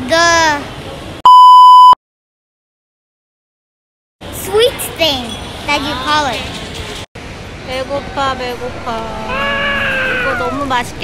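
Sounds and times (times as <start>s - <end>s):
high steady beep: 1.2s - 2.0s.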